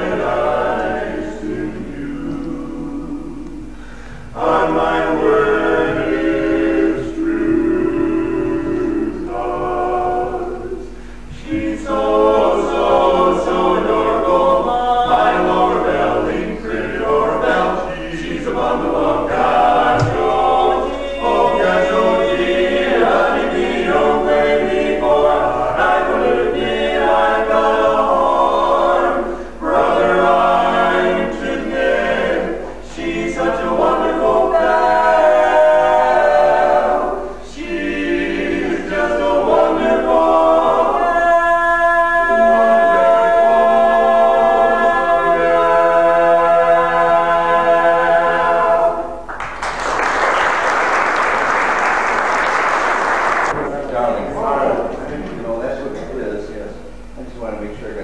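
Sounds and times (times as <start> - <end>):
male quartet singing a cappella: 0.0 - 49.3.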